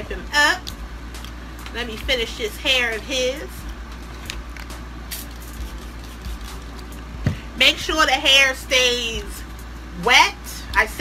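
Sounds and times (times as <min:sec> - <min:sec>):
steady low room hum: 0:00.0 - 0:11.0.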